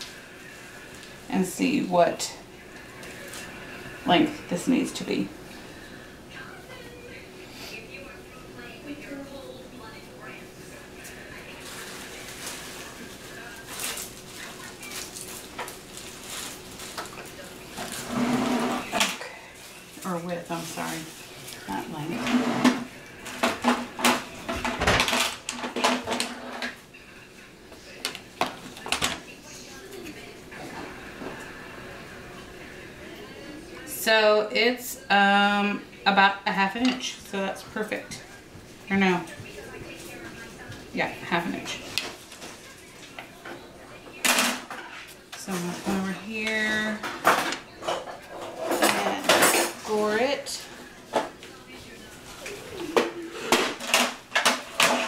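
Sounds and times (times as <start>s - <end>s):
person's voice: 4.0s - 5.4s.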